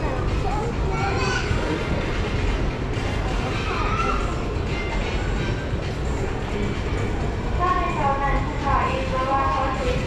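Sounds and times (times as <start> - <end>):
indoor crowd background rumble: 0.0 - 10.0.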